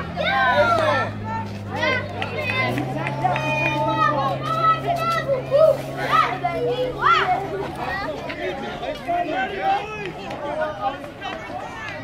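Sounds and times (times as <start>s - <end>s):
children calling and shouting: 0.0s - 12.0s
crowd chatter: 0.0s - 12.0s.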